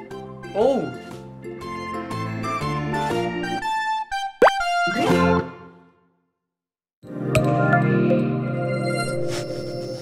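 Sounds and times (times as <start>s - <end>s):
rising cartoon pop effect: 4.4s - 5.1s.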